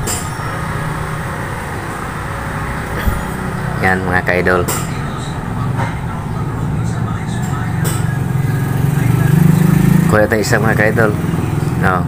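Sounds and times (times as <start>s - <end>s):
low engine drone: 1.5s - 7.2s.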